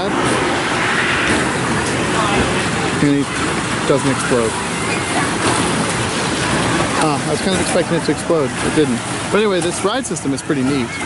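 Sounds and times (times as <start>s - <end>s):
splashing churning water: 0.0s - 11.0s.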